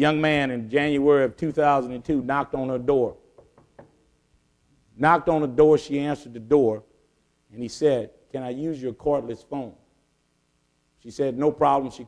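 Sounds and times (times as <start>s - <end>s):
knocks on wooden lectern: 3.3s - 4.0s.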